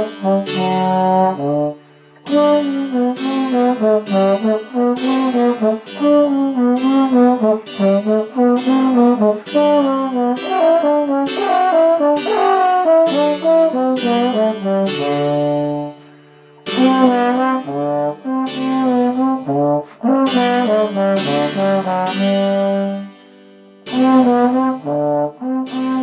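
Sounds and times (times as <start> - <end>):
trombone playing baroque sonata: 0.0 - 26.0.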